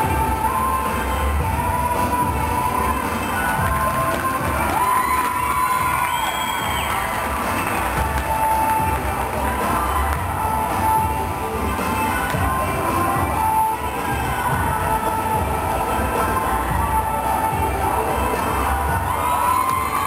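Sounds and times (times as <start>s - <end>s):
music over sound system: 0.0s - 20.0s
crowd cheering: 2.8s - 10.1s, 18.2s - 20.0s.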